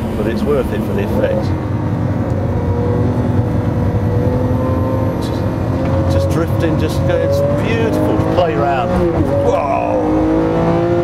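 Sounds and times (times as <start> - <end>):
car engine from inside cabin: 0.0 - 11.0.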